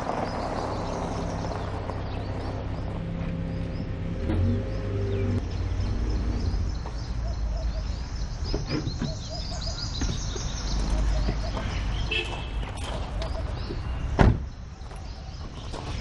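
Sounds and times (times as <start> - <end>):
car engine humming: 0.0 - 14.5
birds chirping: 0.0 - 16.0
tyres rolling on gravel: 0.0 - 16.0.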